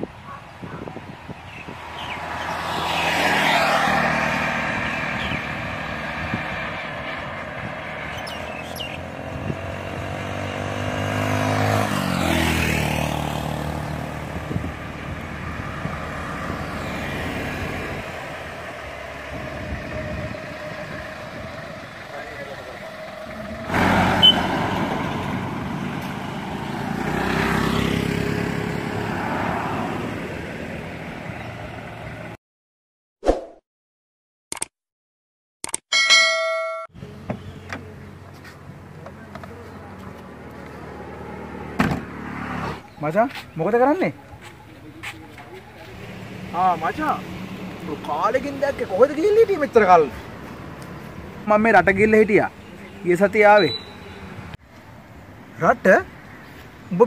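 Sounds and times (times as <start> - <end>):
vehicles passing on a road: 0.0 - 32.4, 36.2 - 57.0.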